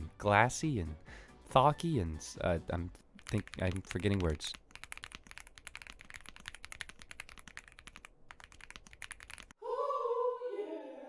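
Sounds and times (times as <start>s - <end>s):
mechanical keyboard typing: 3.2s - 9.6s.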